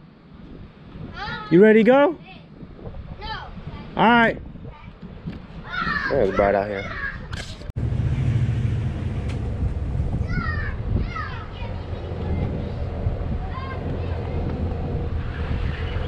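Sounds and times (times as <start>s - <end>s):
car engine idling: 7.8s - 10.8s.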